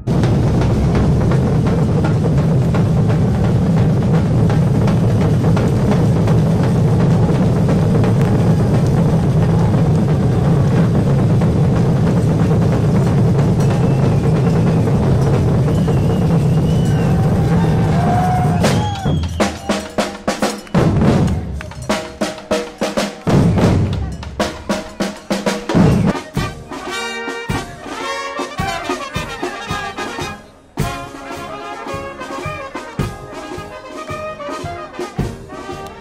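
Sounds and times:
surdo bass drums: 0.0s - 22.6s, 23.2s - 26.7s
samba drum band playing: 0.0s - 36.0s.

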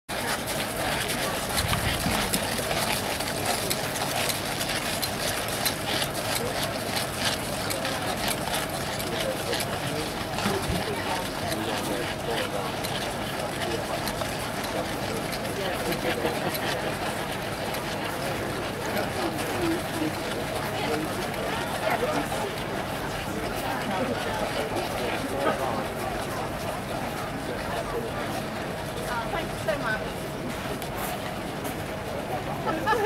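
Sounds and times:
horse hooves on gravel: 0.1s - 27.6s
crowd murmuring: 0.1s - 33.0s.

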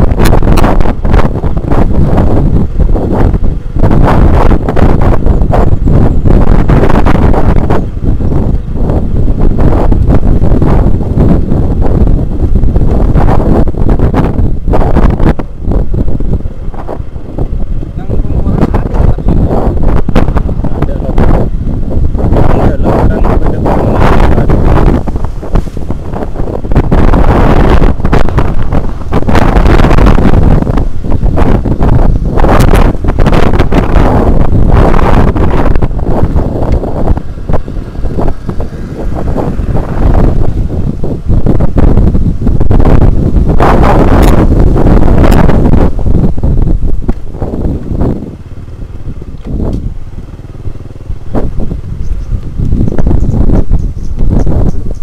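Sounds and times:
motorcycle engine rumbling: 0.0s - 55.0s
wind buffeting microphone: 0.0s - 55.0s.

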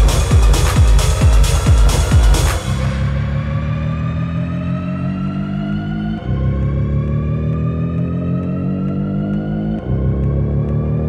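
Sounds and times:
low synth drone: 0.0s - 11.0s
rising synth riser: 0.0s - 11.0s.

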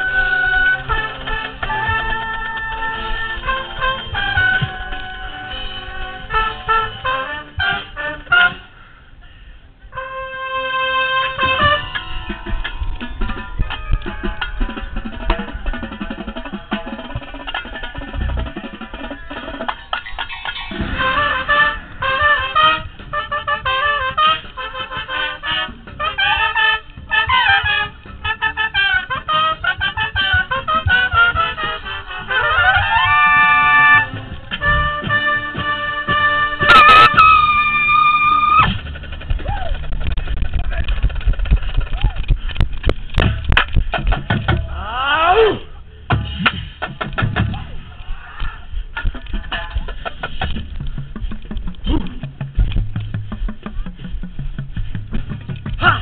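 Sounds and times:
drumline playing: 0.0s - 8.7s, 10.3s - 45.0s, 45.6s - 56.0s
brass section playing: 0.0s - 38.9s.

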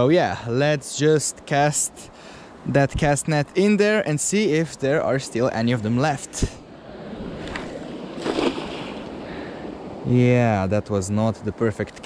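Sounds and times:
net splashing into water: 7.4s - 9.1s
water washing: 7.4s - 9.4s.

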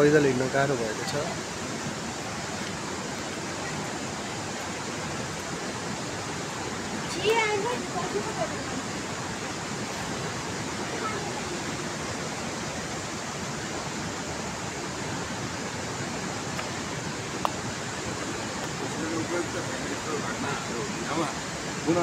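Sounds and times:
steady rushing noise: 0.0s - 22.0s.

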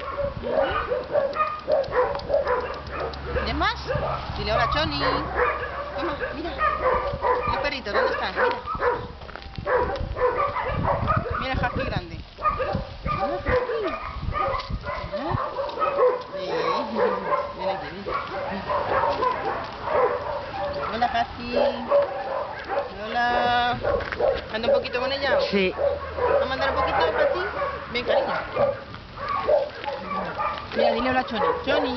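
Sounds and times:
dogs barking and yipping: 0.0s - 31.9s.

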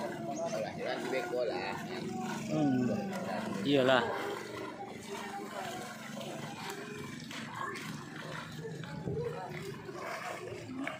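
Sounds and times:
men talking and calling out: 0.0s - 10.9s.

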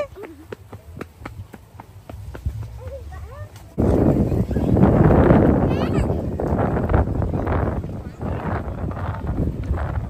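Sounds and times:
wind noise on microphone: 0.9s - 10.0s.

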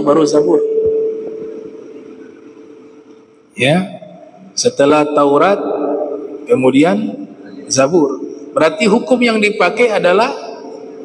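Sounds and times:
microphone feedback ringing tone: 0.0s - 3.0s.

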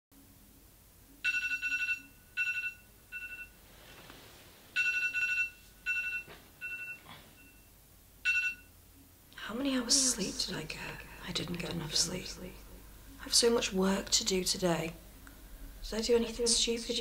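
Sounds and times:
smartphone alarm trilling: 1.2s - 3.6s, 4.8s - 8.7s.

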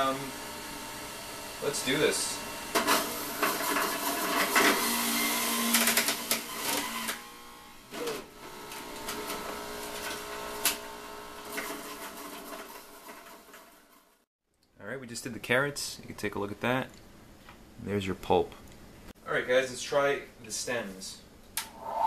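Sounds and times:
electric juicer grinding: 0.0s - 14.0s
juicer knock: 2.7s - 7.2s, 8.1s - 13.7s.

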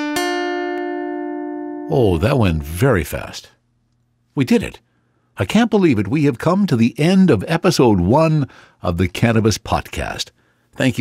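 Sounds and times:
plucked string chord: 0.0s - 2.8s.

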